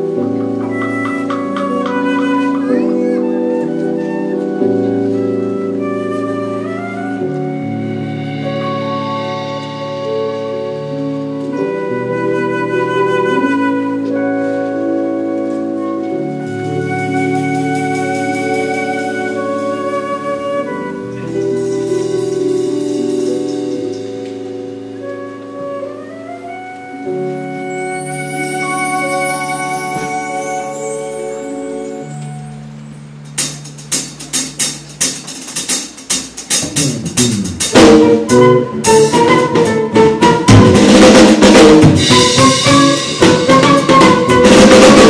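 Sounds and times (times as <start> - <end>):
drum kit strikes: 0.0 - 3.0, 33.2 - 45.0
flute melody: 0.0 - 35.0, 36.7 - 45.0
live band playing: 0.0 - 45.0.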